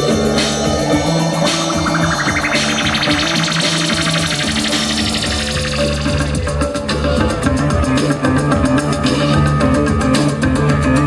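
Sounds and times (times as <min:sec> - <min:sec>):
rising pitch sweep: 0:00.0 - 0:07.3.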